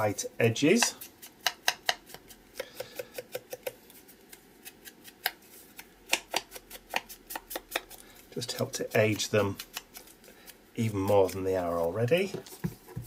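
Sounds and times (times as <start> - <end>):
foam tool tapping paper: 0.7 - 10.1, 10.8 - 13.0.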